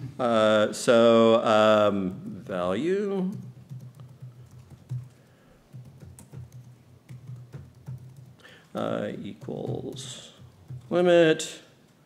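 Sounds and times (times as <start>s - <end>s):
laptop keyboard typing: 3.3s - 11.0s.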